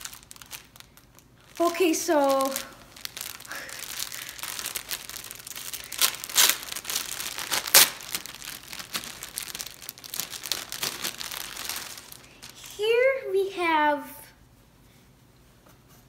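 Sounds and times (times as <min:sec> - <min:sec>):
plastic bag crinkling: 0:00.0 - 0:13.6.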